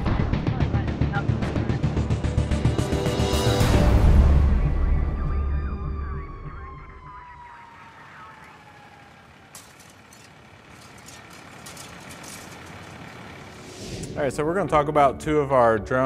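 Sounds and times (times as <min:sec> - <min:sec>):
music: 0:00.0 - 0:06.9, 0:13.8 - 0:16.0
siren sliding down in pitch: 0:04.1 - 0:09.5
faint crackles: 0:07.4 - 0:13.7.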